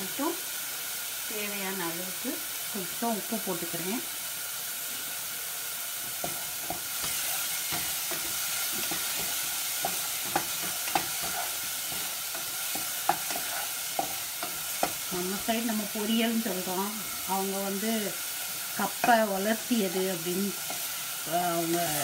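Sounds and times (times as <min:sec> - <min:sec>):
spices sizzling in hot oil: 0:00.0 - 0:22.0
spatula scraping a pan: 0:06.1 - 0:22.0.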